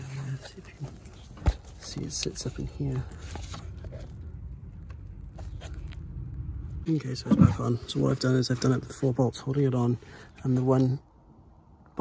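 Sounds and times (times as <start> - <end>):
steady low rumble: 0.0 - 10.3
handling scrapes and rustles: 0.1 - 4.2.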